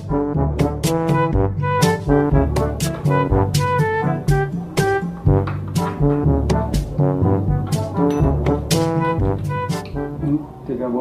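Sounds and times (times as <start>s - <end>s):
brass instruments playing: 0.0s - 10.4s
drum beat: 0.3s - 10.1s.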